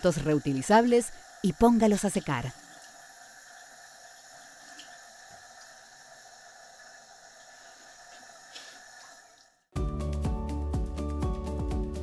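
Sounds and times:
faucet running into sink: 0:00.0 - 0:09.6.

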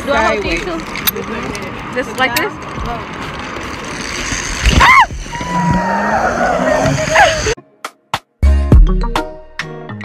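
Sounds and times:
zip line trolley on cable: 0:00.1 - 0:07.6.

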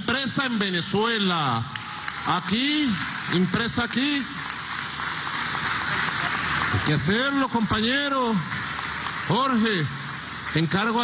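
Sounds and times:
audience applauding: 0:01.4 - 0:11.0.

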